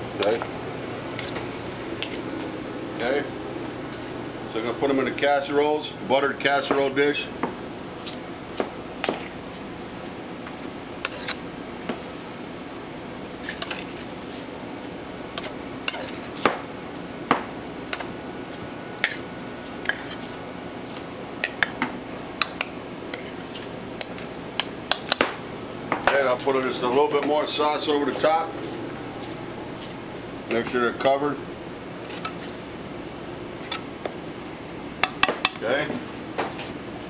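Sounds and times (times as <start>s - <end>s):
kitchen background hum: 0.0s - 37.0s.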